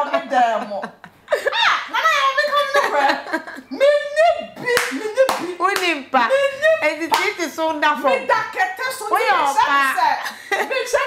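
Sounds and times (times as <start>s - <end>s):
hand claps: 4.7s - 6.0s, 7.1s - 7.4s.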